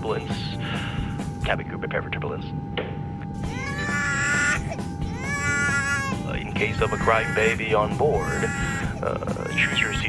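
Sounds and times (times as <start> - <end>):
steady background tone: 0.0 - 10.0
high wailing cry: 3.5 - 10.0.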